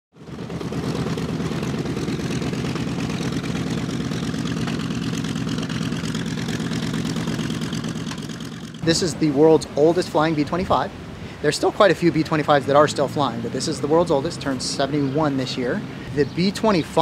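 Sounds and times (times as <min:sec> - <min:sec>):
radial aircraft engines droning: 0:00.2 - 0:17.0.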